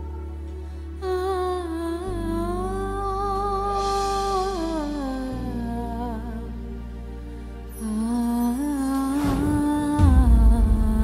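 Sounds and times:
low accompaniment chords: 0.0s - 11.0s.

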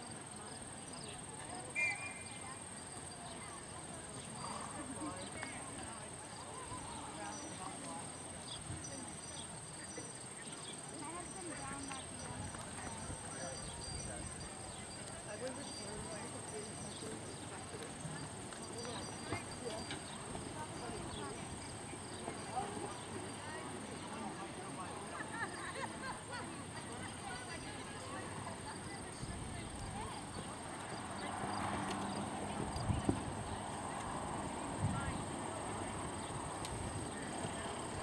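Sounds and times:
people talking faintly: 0.0s - 38.0s.

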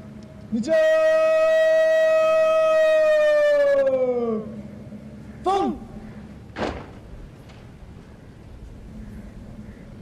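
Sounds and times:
person shouting drawn-out command: 5.4s - 5.9s.

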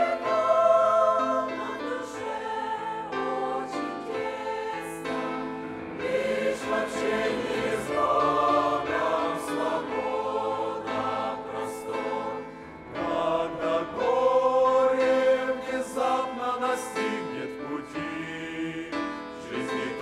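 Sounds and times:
choir singing a hymn: 0.0s - 20.0s.

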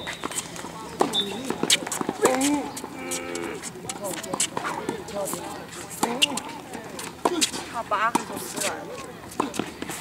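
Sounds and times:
tennis shoes squeaking on court: 0.0s - 10.0s
tennis balls struck by racket: 0.1s - 3.0s, 3.9s - 10.0s.

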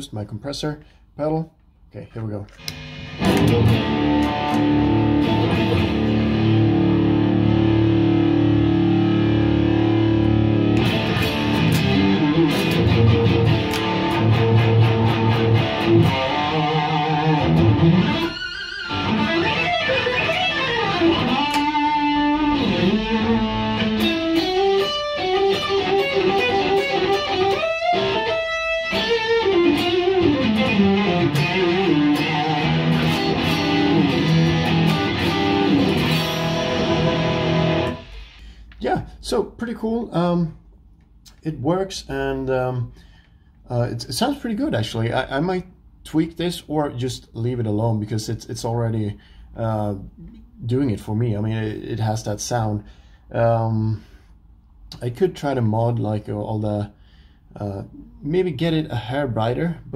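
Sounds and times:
overdriven electric guitar: 2.5s - 38.8s.

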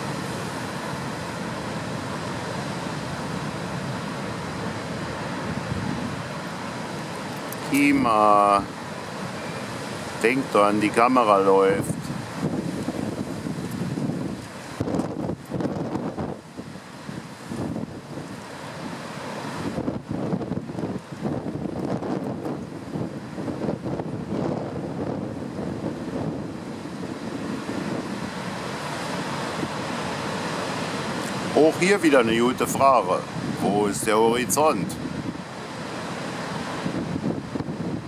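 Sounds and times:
wind buffeting microphone: 0.0s - 7.8s, 11.7s - 38.0s
ocean surf breaking on rocks: 0.0s - 38.0s.

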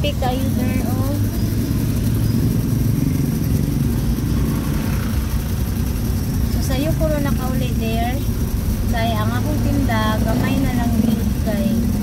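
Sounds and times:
person talking: 0.0s - 1.3s
vehicle engine humming: 0.0s - 12.0s.

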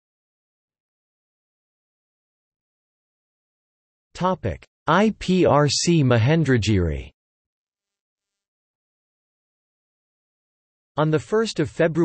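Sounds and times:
synthetic text-to-speech voice: 4.2s - 7.2s, 11.0s - 12.0s.

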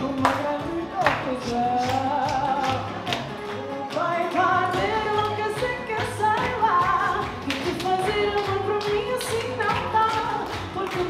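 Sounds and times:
pop backing music with drum beat: 0.0s - 11.0s
woman singing into microphone: 0.0s - 11.0s.

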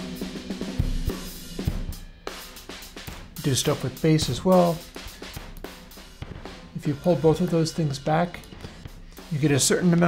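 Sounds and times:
drum kit steady beat: 0.0s - 10.0s.

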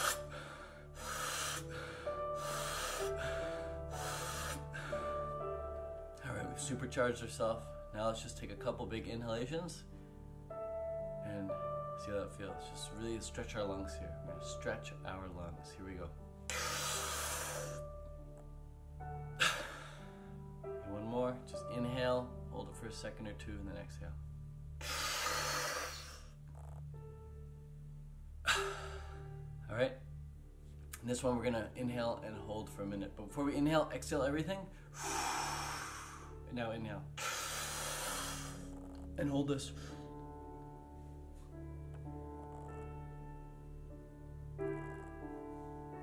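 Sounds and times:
man inhaling deeply: 0.0s - 5.3s, 16.5s - 17.8s, 19.4s - 20.4s, 24.8s - 26.4s, 34.7s - 36.4s, 37.2s - 38.8s
background music: 0.0s - 46.0s.

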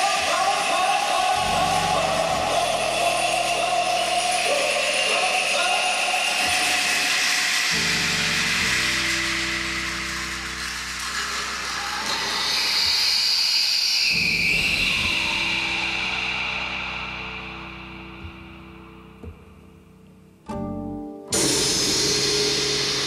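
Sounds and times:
low sustained bass notes: 1.4s - 4.4s
cymbal and gong washes: 21.4s - 23.0s.

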